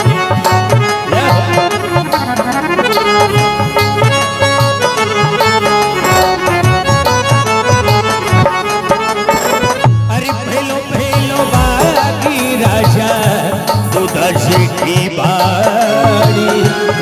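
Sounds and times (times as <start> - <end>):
steady drum beat: 10.1 - 16.6
synthesizer keyboard melody: 11.0 - 14.0.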